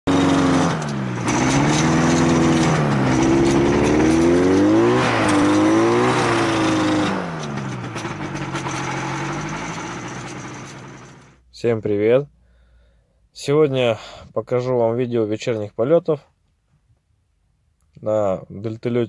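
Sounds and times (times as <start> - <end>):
trike engine and propeller running: 0.1 - 11.4.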